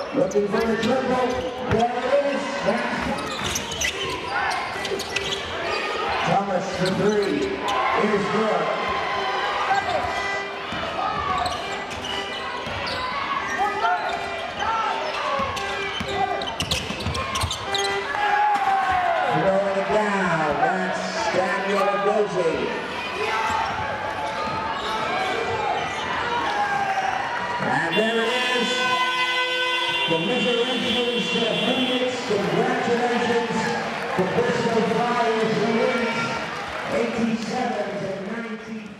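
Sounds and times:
crowd voices and cheering: 0:00.0 - 0:38.9.

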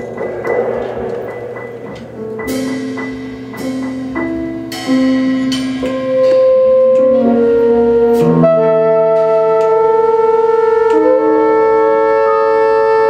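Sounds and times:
ringing percussion: 0:00.0 - 0:10.0
piano: 0:00.0 - 0:13.0
saxophone long notes: 0:06.1 - 0:13.0.

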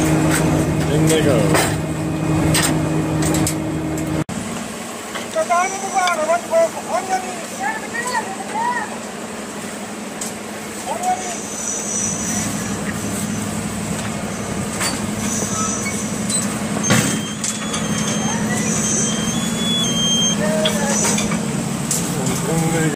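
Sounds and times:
machine hum with rushing hiss: 0:00.0 - 0:22.9
high whistling tones: 0:11.2 - 0:13.5, 0:15.2 - 0:16.4, 0:17.1 - 0:21.2.

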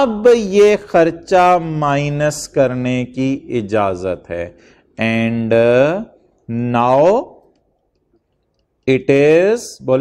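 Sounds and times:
man lecturing: 0:00.0 - 0:07.6, 0:08.8 - 0:10.0.

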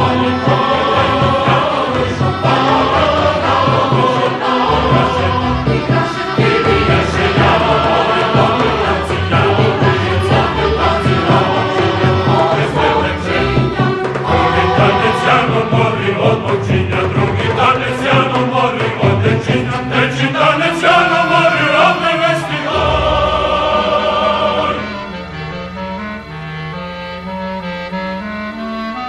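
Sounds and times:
chamber ensemble playing: 0:00.0 - 0:18.9, 0:19.5 - 0:29.0
mixed choir singing: 0:00.0 - 0:25.5.

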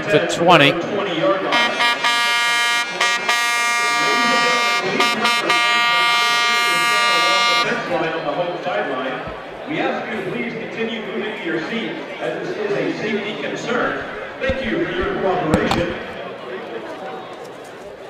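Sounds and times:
loud steady horn blast: 0:01.4 - 0:07.9.

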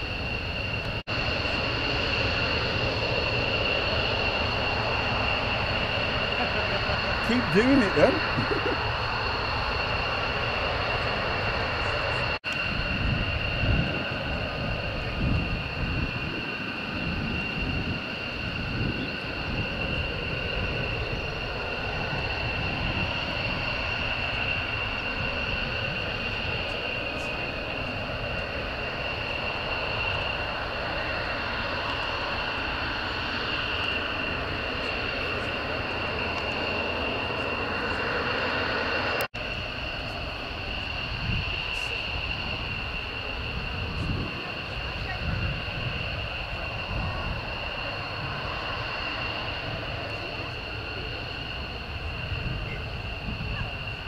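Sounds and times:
jet engines idling: 0:00.0 - 0:54.0.

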